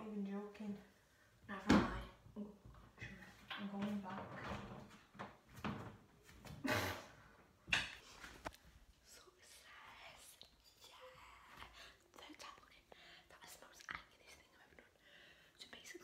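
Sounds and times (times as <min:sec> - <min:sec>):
woman whispering: 0:09.0 - 0:15.0, 0:15.6 - 0:16.0.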